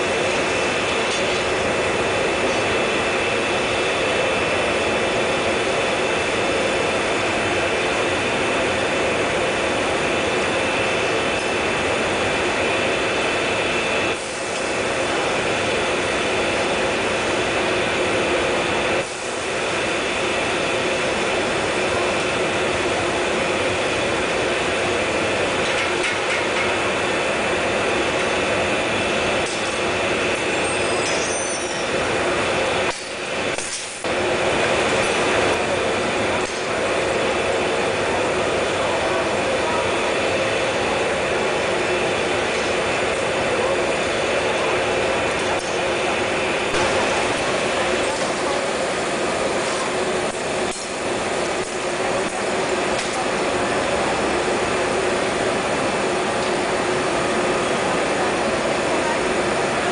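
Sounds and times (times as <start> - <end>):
glassworks machinery hiss and hum: 0.0 - 59.9.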